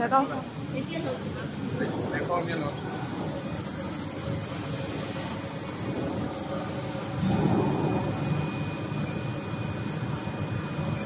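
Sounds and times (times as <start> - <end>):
tape slitting machine hum and hiss: 0.0 - 11.0.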